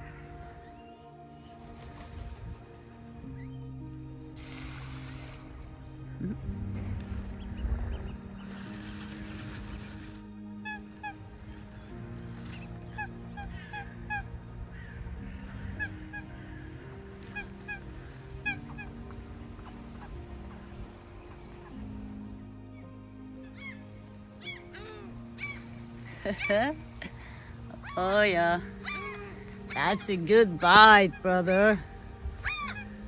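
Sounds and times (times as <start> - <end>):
gulls crying: 10.2 - 33.0
ducks quacking: 10.6 - 22.0.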